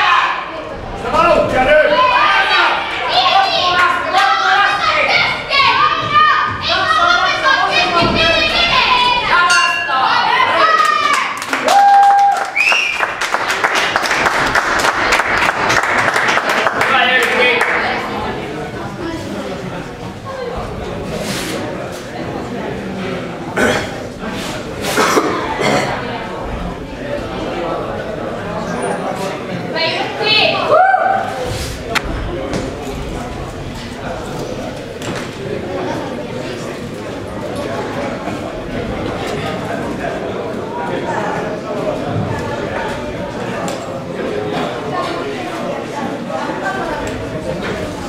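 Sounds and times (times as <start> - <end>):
people shouting in a large hall: 0.0 - 12.6, 29.8 - 31.6
murmur of voices: 0.0 - 48.0
person coughing: 23.6 - 24.0, 24.9 - 26.0.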